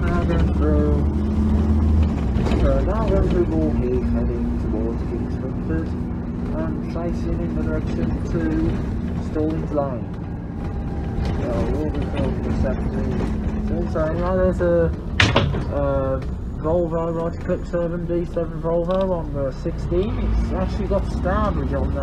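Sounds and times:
bus engine and road drone: 0.0 - 22.0
voices talking: 11.3 - 15.0.

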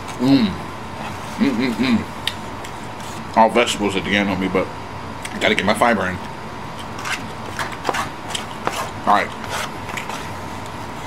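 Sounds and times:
food being chewed: 6.8 - 10.3.

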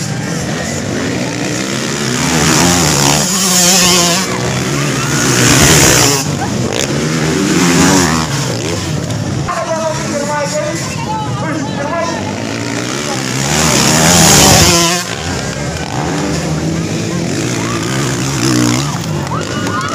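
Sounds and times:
dirt bikes racing past: 0.0 - 19.9.

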